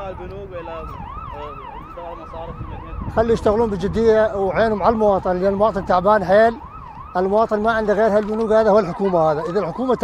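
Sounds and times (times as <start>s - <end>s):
siren yelping: 0.0s - 10.0s.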